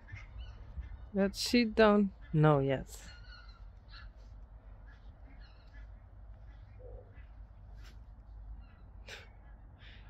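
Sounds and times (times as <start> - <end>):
faint bird calls: 0.0 - 1.2, 3.0 - 10.0.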